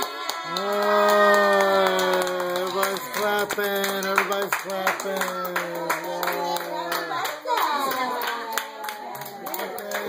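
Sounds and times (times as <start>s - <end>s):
people clapping in steady beat: 0.0s - 10.0s.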